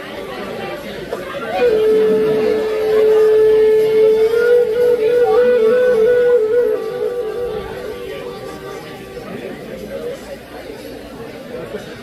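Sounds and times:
crowd chatter: 0:00.0 - 0:12.0
flute playing long notes: 0:01.2 - 0:10.3.

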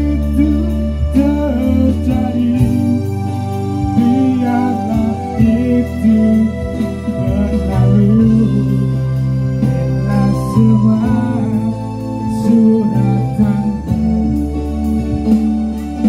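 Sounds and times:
man singing: 0:00.0 - 0:15.2
electric guitar: 0:00.0 - 0:16.0
sustained low bass: 0:00.0 - 0:16.0.

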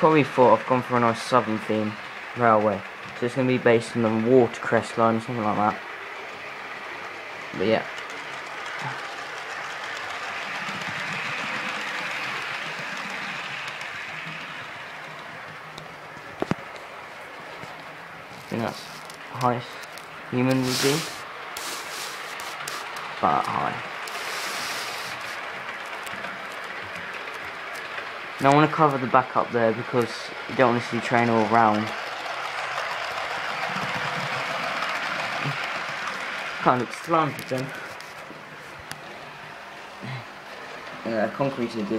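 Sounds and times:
model train running on track: 0:00.0 - 0:41.9.

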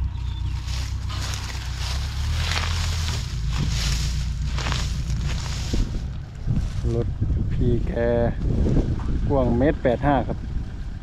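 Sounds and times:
diesel engine idling: 0:00.0 - 0:11.0
wind buffeting microphone: 0:00.4 - 0:11.0.

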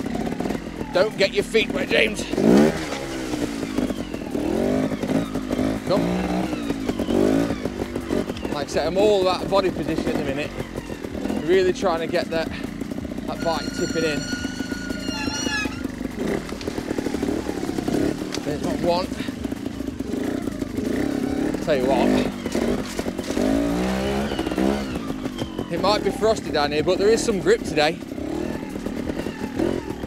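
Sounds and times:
motorcycle engine puttering: 0:00.0 - 0:30.0.

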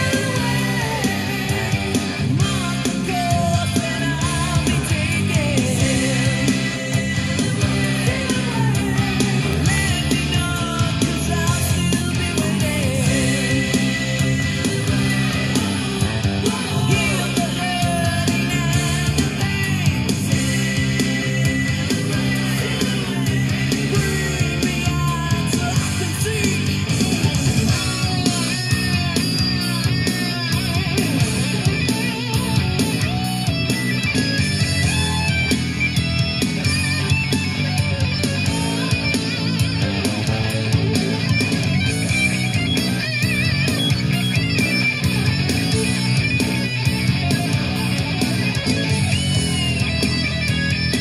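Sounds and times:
hard rock song on stereo: 0:00.0 - 0:51.0.

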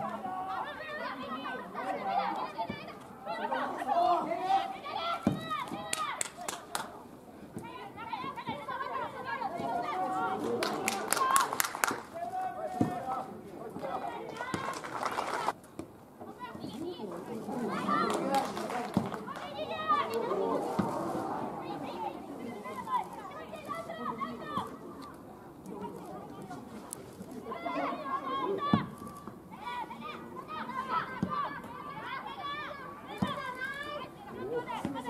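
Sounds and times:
footballers calling out: 0:00.0 - 0:15.6, 0:16.2 - 0:35.0.

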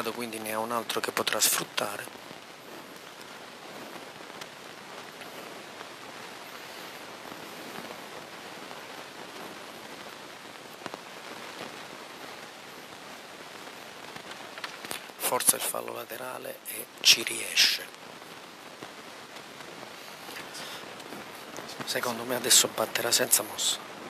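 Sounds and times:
steady background hiss: 0:00.0 - 0:24.0.

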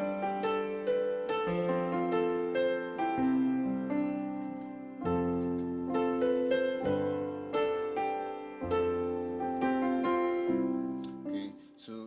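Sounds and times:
piano chords and notes: 0:00.0 - 0:12.0.

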